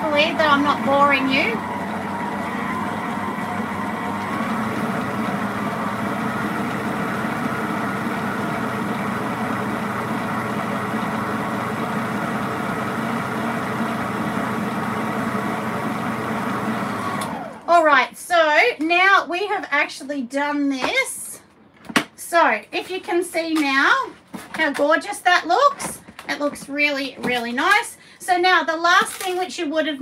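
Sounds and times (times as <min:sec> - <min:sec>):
stand mixer running: 0:00.0 - 0:17.7.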